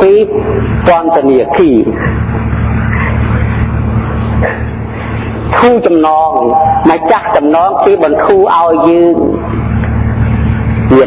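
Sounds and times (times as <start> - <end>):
continuous hiss: 0.0 - 11.0
low mechanical hum: 0.0 - 11.0.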